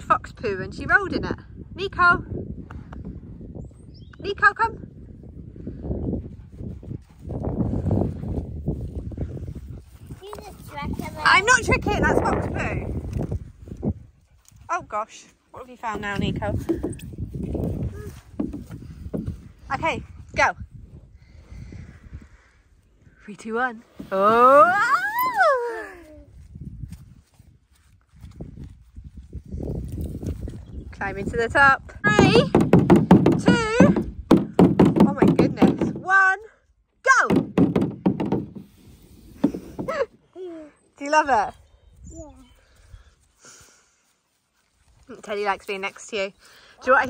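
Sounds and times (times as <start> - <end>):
wind buffeting microphone: 0.0 - 23.4, 24.0 - 36.4
footsteps on grass: 26.3 - 30.7, 42.6 - 46.7.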